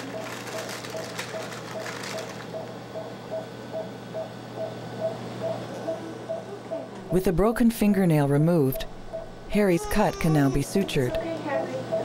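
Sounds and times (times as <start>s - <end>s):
low equipment hum: 0.0s - 12.0s
patient monitor beeping: 0.0s - 12.0s.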